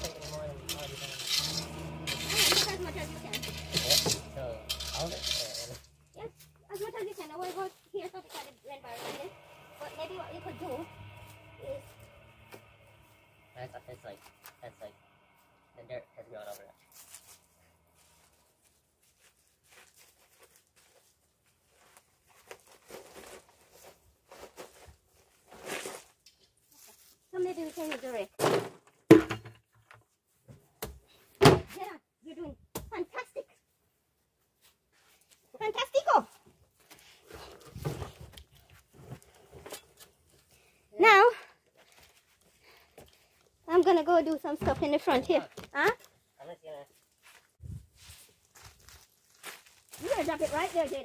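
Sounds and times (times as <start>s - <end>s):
people talking: 0.0s - 10.9s, 11.5s - 11.9s, 13.6s - 15.0s, 15.8s - 16.7s, 27.4s - 28.3s, 43.7s - 46.0s, 50.0s - 51.0s.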